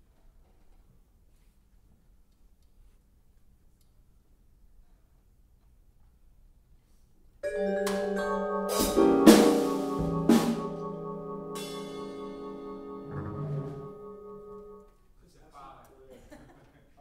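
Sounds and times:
jazz quartet playing chord: 0:07.5 - 0:14.8
drum and cymbal strikes: 0:07.9 - 0:13.8.

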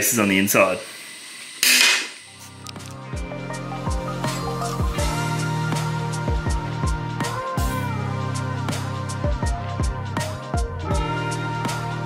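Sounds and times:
loud burst of noise: 0:00.0 - 0:02.9
background music: 0:02.3 - 0:12.0.

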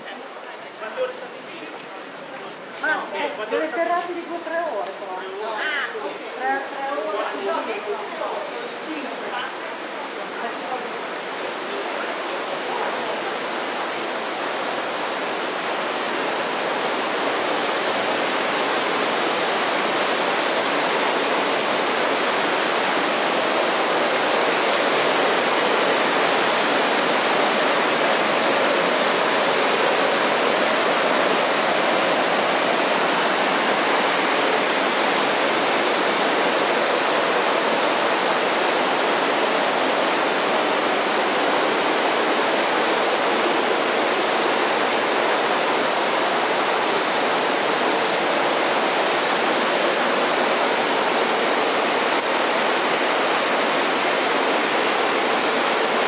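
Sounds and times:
stream water rushing: 0:00.0 - 0:56.0.

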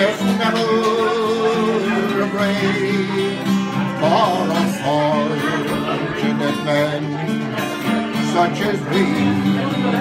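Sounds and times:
acoustic guitar strummed chords: 0:00.0 - 0:10.0.

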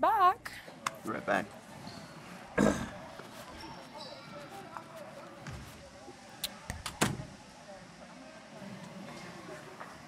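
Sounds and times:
faint basketball court sounds: 0:00.4 - 0:07.4.

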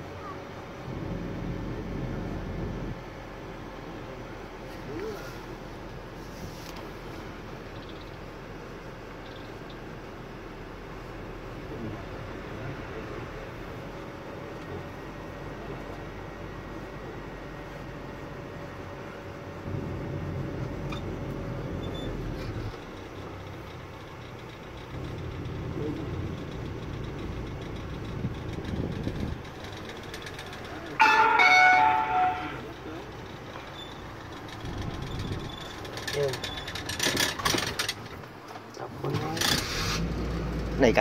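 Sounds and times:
car engine and road noise: 0:00.0 - 0:41.0
short loud tonal sound: 0:31.0 - 0:32.7.

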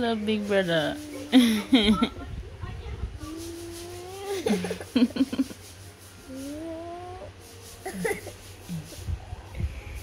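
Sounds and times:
baby cooing: 0:06.3 - 0:07.3.

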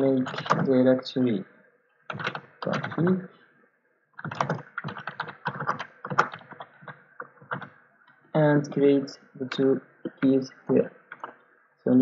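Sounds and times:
keyboard typing: 0:00.0 - 0:00.8, 0:02.1 - 0:03.2, 0:04.2 - 0:11.4.

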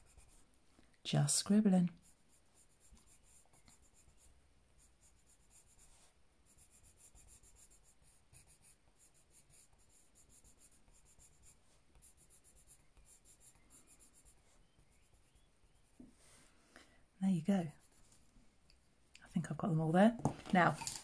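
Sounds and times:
pencil scribbling on cardstock: 0:00.0 - 0:00.4, 0:02.0 - 0:16.0.

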